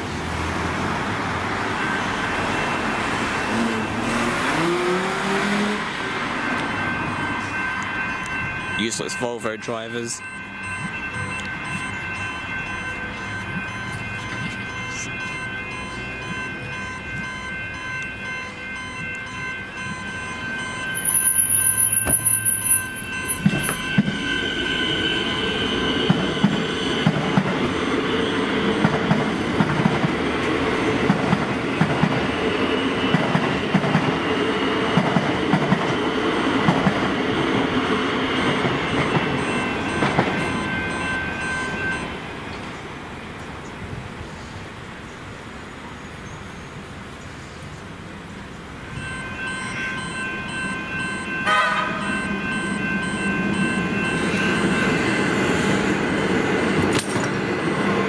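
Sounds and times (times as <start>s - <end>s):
electric train rumbling: 0.0s - 58.0s
level crossing warning bells: 0.8s - 42.6s, 48.2s - 58.0s
loud high-pitched whistle: 6.7s - 27.1s.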